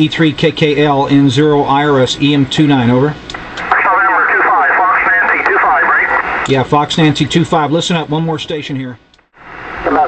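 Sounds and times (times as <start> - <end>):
thin radio voice through speaker: 3.6 - 6.4.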